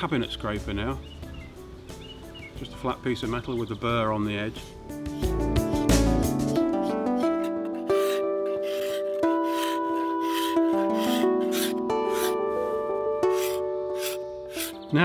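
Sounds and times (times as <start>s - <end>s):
background music with held chords: 0.0s - 15.0s
scraper shaving wood: 5.1s - 12.4s, 13.2s - 14.9s.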